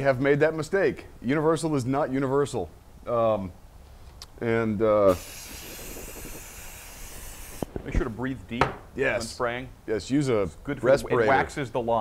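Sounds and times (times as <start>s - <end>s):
aerosol spray hissing: 5.1s - 7.7s.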